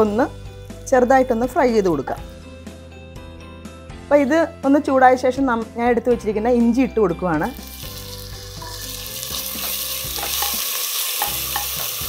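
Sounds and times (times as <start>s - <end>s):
paste sizzling in hot ghee: 0.0s - 2.4s, 7.5s - 12.0s.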